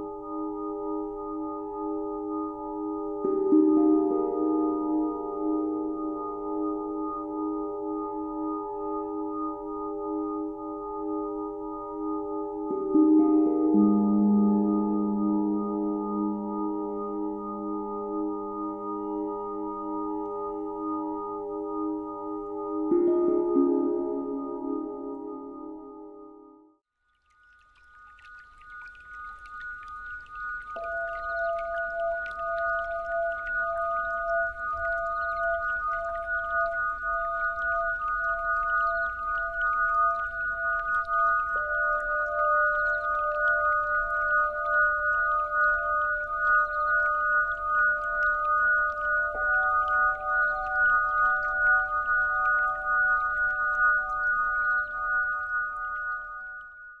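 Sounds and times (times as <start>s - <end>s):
singing bowl tones: 0.0s - 26.6s, 27.2s - 57.0s.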